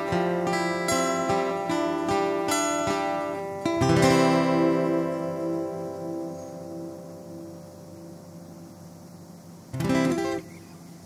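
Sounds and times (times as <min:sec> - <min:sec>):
acoustic guitar fingerpicking: 0:00.0 - 0:11.0.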